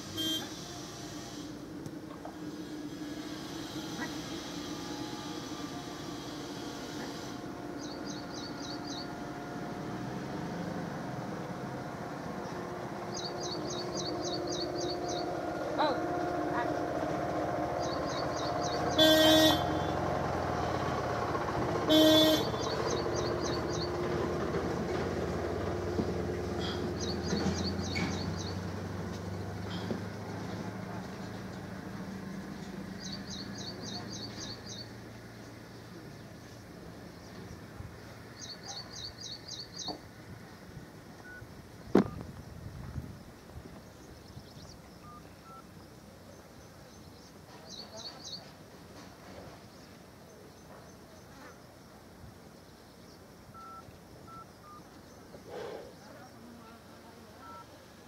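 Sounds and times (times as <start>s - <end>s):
vehicle horn honking: 0.0s - 1.5s, 3.8s - 10.2s, 18.1s - 20.9s, 21.8s - 23.3s
faint hiss: 0.0s - 10.5s
steady low hum: 0.0s - 22.6s.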